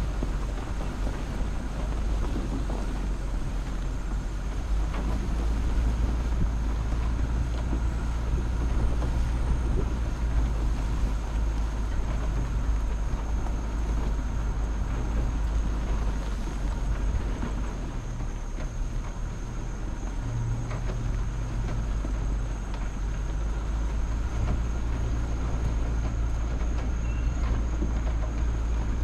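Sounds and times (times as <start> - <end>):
vehicle engine rumbling: 0.0 - 29.0
faint steady high tone: 27.0 - 27.5.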